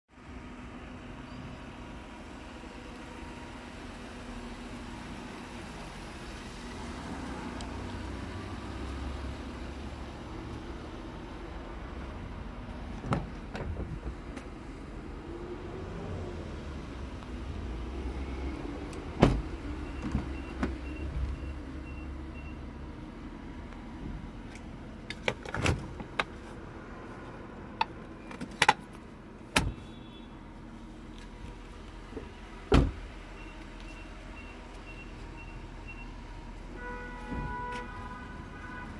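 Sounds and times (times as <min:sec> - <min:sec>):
car doors and interior clicks: 0:12.9 - 0:14.5, 0:32.1 - 0:33.0.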